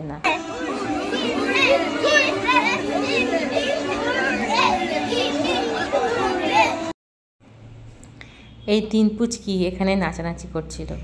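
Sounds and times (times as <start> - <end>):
song playing: 0.3 - 6.9
children shouting and cheering: 0.3 - 7.0.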